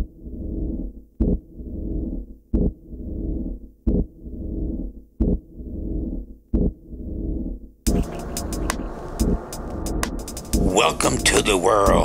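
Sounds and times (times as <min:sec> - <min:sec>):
low rumbling drone: 0:07.9 - 0:12.0.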